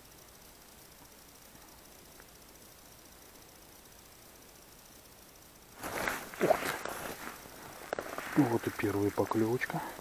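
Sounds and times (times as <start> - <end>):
jacket and rod rustling: 5.8 - 8.9.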